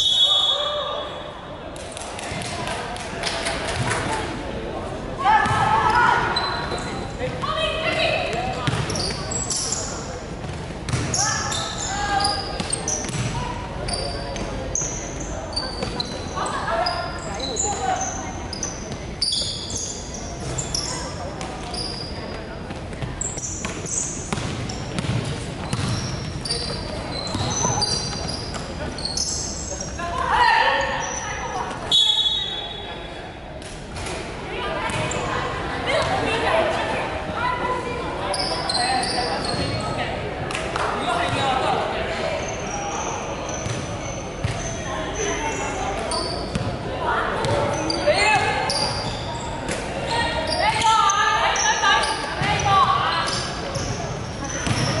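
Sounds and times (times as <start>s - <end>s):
sneaker squeaks: 0.0s - 1.3s, 5.3s - 33.2s, 34.0s - 55.0s
basketball bouncing: 5.4s - 5.7s, 8.6s - 8.9s, 10.4s - 11.1s, 13.0s - 13.4s, 24.3s - 26.2s, 54.6s - 55.0s.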